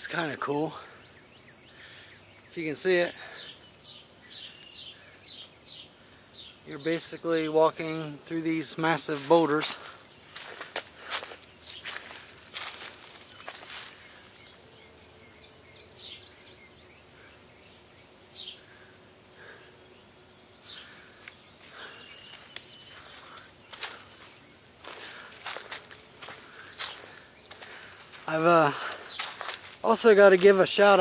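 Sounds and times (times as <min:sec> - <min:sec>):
faint bird chirps: 0:00.6 - 0:07.0, 0:11.4 - 0:29.7
footsteps on leaf litter: 0:09.0 - 0:14.6, 0:21.6 - 0:31.0.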